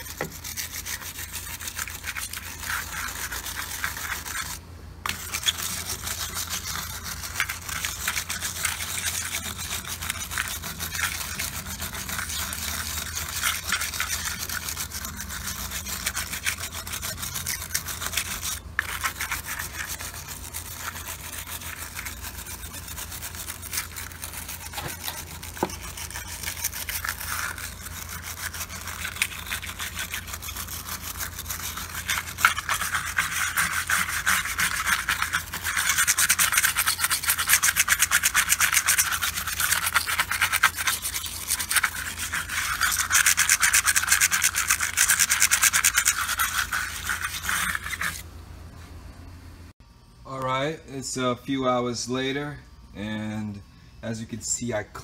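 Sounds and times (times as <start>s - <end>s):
brush scrubbing plastic: 0.0s - 48.3s.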